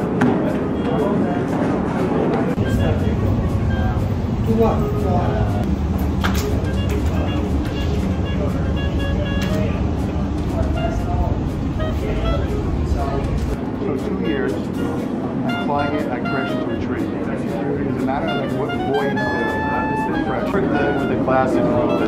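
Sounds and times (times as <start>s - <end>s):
indistinct voices: 0.0s - 22.0s
low hum: 2.6s - 13.8s
music with plucked notes: 15.5s - 22.0s.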